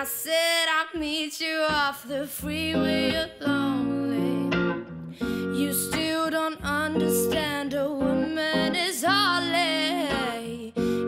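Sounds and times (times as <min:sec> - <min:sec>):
woman singing: 0:00.0 - 0:11.0
electric guitar chords: 0:01.8 - 0:11.0.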